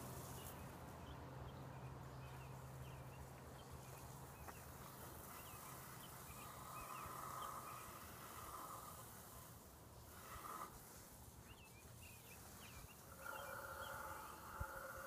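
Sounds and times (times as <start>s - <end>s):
distant birds chirping: 0.0s - 15.0s
garden hose spraying water: 0.0s - 15.0s.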